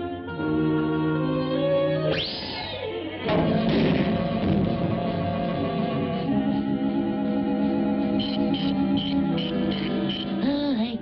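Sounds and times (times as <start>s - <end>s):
orchestral music: 3.1s - 11.0s
sudden crash: 3.3s - 6.4s.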